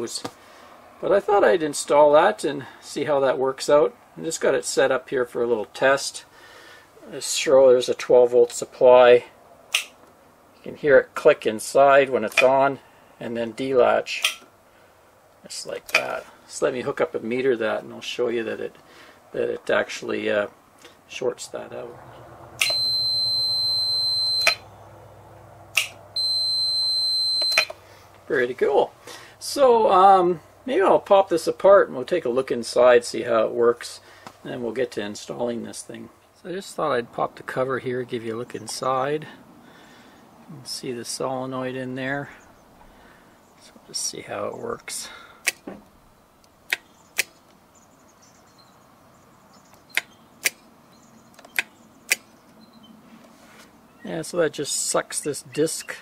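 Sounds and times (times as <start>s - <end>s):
sharp metallic switch clicks: 9.7s - 10.0s, 14.2s - 14.5s, 24.4s - 24.7s, 25.7s - 26.0s, 27.5s - 27.8s, 45.4s - 45.7s, 46.7s - 47.4s, 49.7s - 50.6s, 51.3s - 52.3s
multimeter continuity beep: 22.6s - 24.7s, 26.2s - 27.8s
switch clicking: 25.7s - 26.0s.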